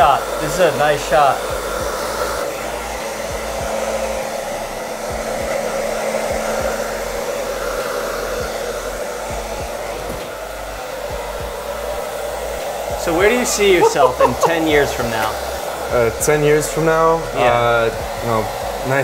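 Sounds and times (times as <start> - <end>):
hair dryer blowing air: 0.0 - 19.0.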